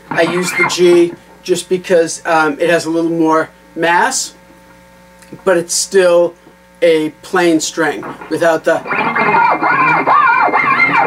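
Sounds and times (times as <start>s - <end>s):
electric guitar sliding swoops: 8.0s - 11.0s.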